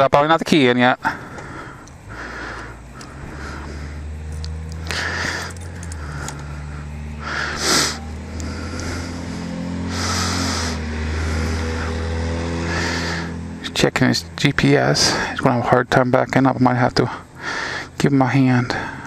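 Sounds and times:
motorcycle engine idling: 0:01.0 - 0:19.0.

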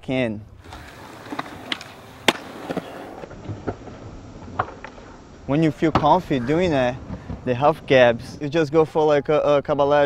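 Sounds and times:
skateboard wheels rolling on concrete: 0:00.4 - 0:08.8
skateboard clacking: 0:00.6 - 0:05.0.

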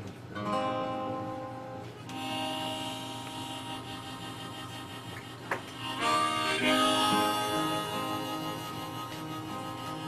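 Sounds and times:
acoustic guitar chord ringing: 0:00.4 - 0:05.0, 0:05.7 - 0:10.0.

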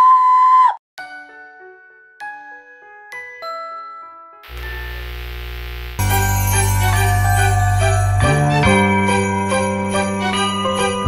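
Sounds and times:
bell-like glockenspiel music: 0:02.2 - 0:04.4, 0:06.0 - 0:11.0.

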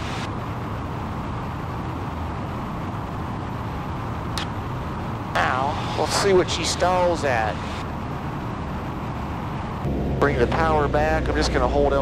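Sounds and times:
airflow noise: 0:00.0 - 0:11.1
aircraft propeller engine droning: 0:00.0 - 0:12.0.

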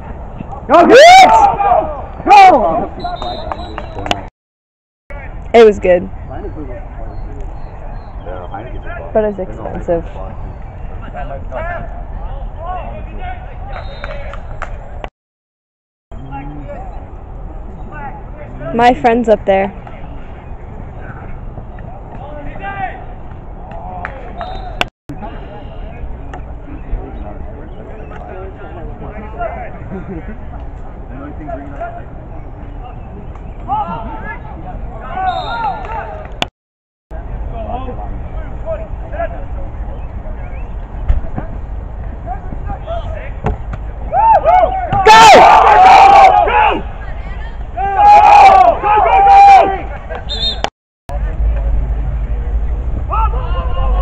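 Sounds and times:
distant shouting and talking: 0:00.1 - 0:04.3, 0:05.1 - 0:15.0, 0:16.2 - 0:36.4, 0:37.2 - 0:54.0
people shouting and cheering: 0:00.5 - 0:04.2, 0:33.6 - 0:36.4, 0:44.0 - 0:50.7, 0:53.0 - 0:54.0
wind rumble on microphone: 0:51.1 - 0:54.0.

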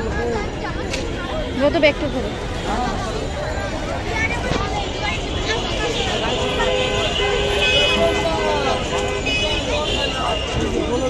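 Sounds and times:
market crowd chatter: 0:00.0 - 0:11.0
street traffic: 0:00.0 - 0:11.0
vehicle horn blasts: 0:06.0 - 0:11.0.

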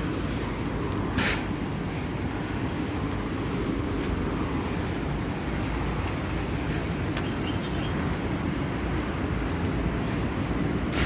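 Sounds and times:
city street rumble: 0:00.0 - 0:11.0.

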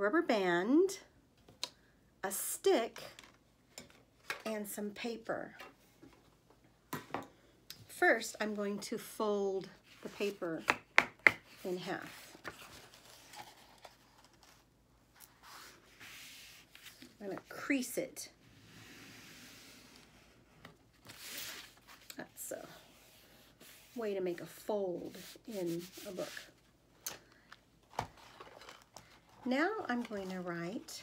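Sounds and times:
paper creasing and rubbing: 0:22.7 - 0:26.6.

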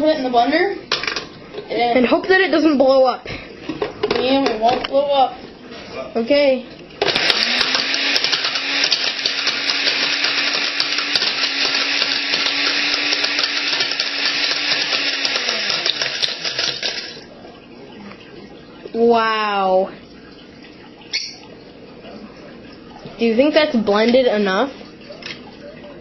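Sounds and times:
blender motor running: 0:07.0 - 0:17.2.

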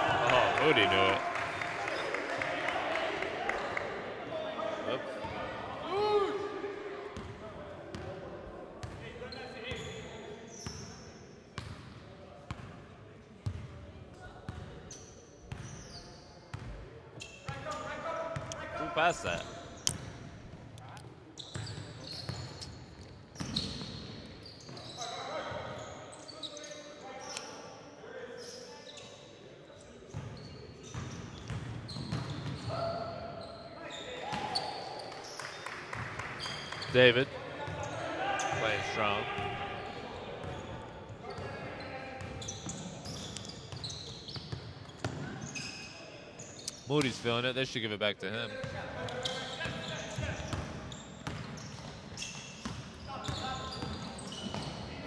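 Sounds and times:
players calling out: 0:00.0 - 0:06.6, 0:36.9 - 0:43.3
sneaker squeaks: 0:08.8 - 0:11.9, 0:14.5 - 0:18.6, 0:21.3 - 0:27.7, 0:28.3 - 0:29.3, 0:30.1 - 0:35.6, 0:36.4 - 0:47.1, 0:48.5 - 0:55.0
basketball bouncing on court: 0:49.6 - 0:54.8.

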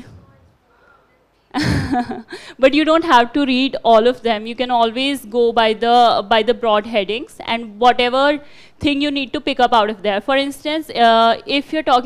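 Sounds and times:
woman laughing loudly: 0:01.6 - 0:02.4.

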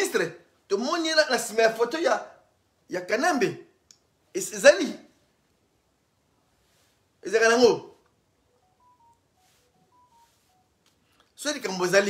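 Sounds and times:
faint electronic beeps: 0:08.3 - 0:11.2.

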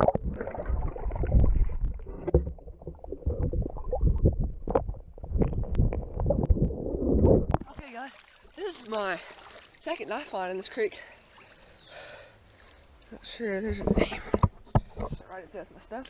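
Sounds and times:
underwater moving water rumble: 0:00.0 - 0:07.8.

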